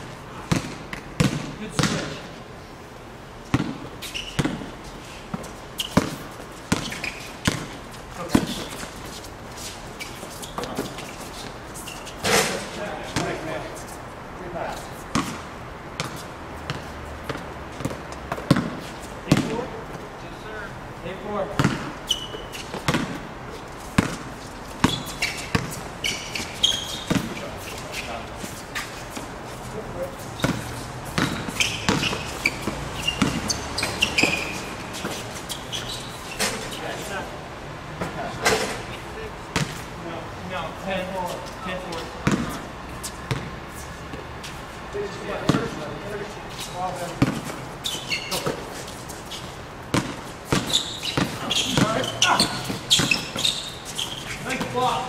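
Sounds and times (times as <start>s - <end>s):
basketball bouncing on hard court: 0.5s - 2.2s, 3.5s - 4.7s, 5.3s - 8.9s, 15.1s - 15.4s, 16.0s - 19.7s, 21.6s - 23.3s, 24.0s - 27.5s, 30.4s - 35.6s, 39.5s - 39.8s, 42.2s - 42.6s, 43.3s - 43.5s, 45.4s - 45.8s, 47.2s - 47.6s, 49.9s - 53.8s
players calling out: 50.5s - 55.0s.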